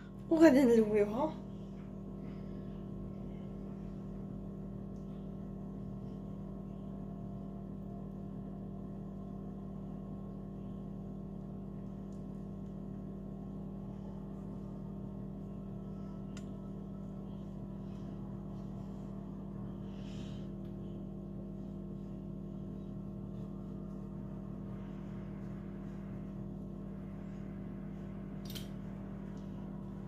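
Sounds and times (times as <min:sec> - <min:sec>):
low machine hum: 0:00.0 - 0:30.0.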